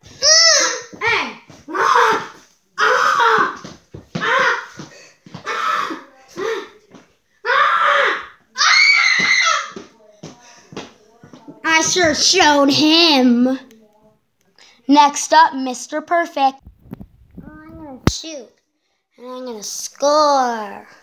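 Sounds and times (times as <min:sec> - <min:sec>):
children shouting: 0:00.0 - 0:04.8, 0:05.4 - 0:06.7, 0:07.4 - 0:09.8.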